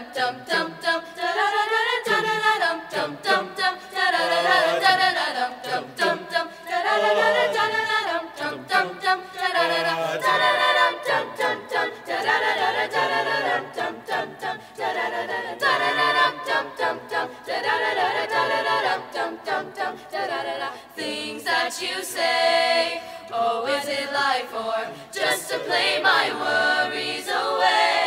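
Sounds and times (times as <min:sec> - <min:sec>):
choir singing a cappella: 0:00.0 - 0:28.0.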